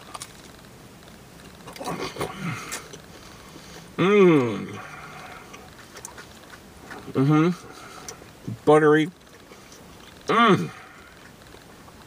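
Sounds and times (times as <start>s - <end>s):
person chewing: 1.4s - 8.5s, 9.2s - 12.0s
person humming: 4.0s - 5.5s.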